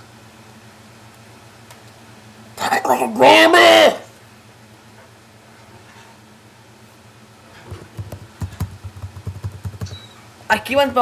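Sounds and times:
keyboard typing clicks: 7.7s - 10.1s.

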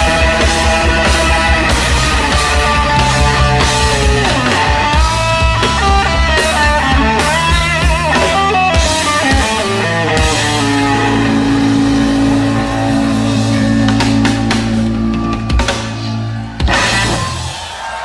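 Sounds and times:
electric guitar lead: 0.0s - 17.5s
bass: 0.0s - 18.0s
drums: 0.0s - 18.0s.

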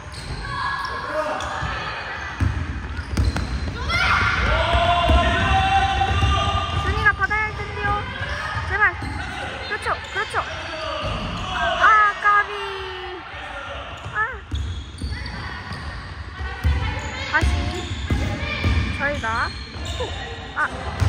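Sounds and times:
sneakers squeaking: 0.0s - 11.8s, 13.8s - 21.0s.

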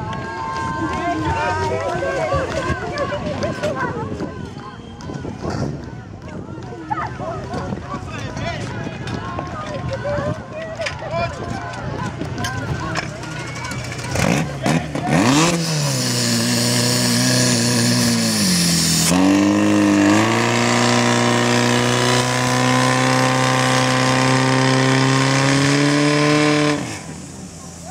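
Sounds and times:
fire pump engine revving: 12.9s - 27.9s.

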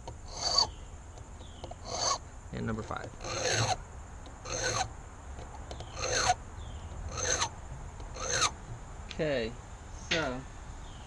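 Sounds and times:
file scraping brass: 0.3s - 0.7s, 1.8s - 2.2s, 3.1s - 3.8s, 4.4s - 4.9s, 5.8s - 6.4s, 7.1s - 7.5s, 8.1s - 8.6s.

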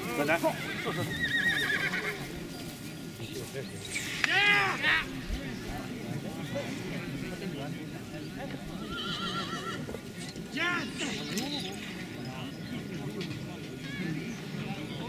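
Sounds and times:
murmur of people talking: 0.0s - 15.0s
horse whinnying: 0.6s - 2.2s, 8.8s - 10.0s.

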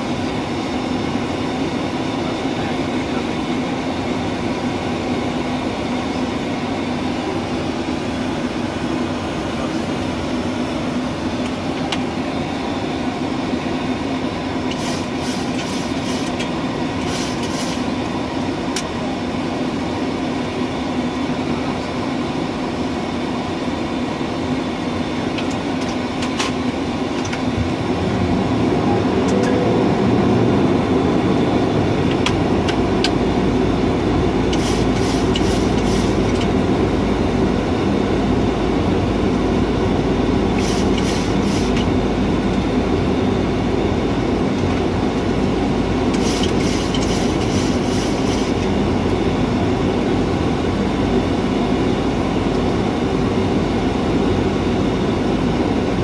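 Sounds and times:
jet engine drone: 0.0s - 56.0s
airflow rush: 27.4s - 33.9s.

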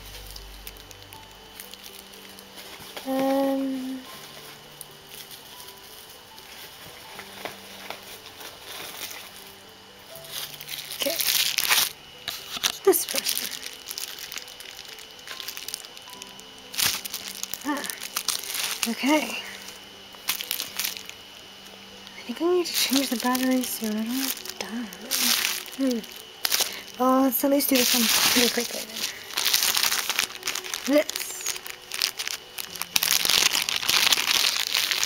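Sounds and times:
plastic packaging crinkling: 0.0s - 35.0s
soft background music: 0.0s - 35.0s.

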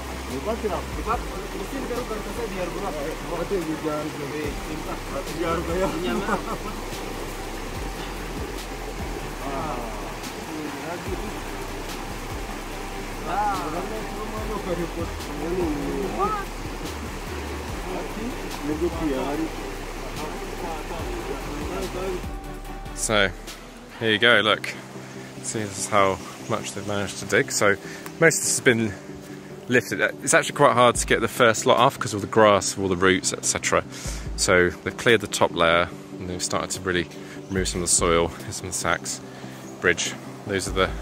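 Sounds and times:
men calling to each other: 0.0s - 7.1s, 12.4s - 22.4s
men calling and talking: 0.0s - 41.0s
shallow stream rushing: 0.0s - 41.0s.

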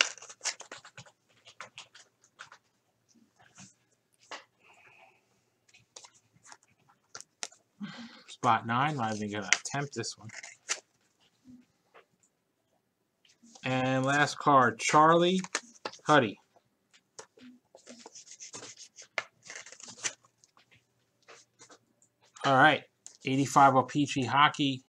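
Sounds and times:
plastic sleeve rustling and scraping: 0.0s - 2.7s, 17.4s - 21.8s
trading cards rustling and scraping: 0.0s - 5.0s, 5.6s - 12.1s, 13.3s - 16.4s, 17.0s - 23.2s.

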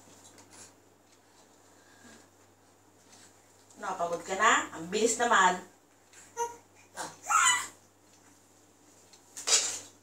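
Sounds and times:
baby cooing and squealing: 6.3s - 7.8s.

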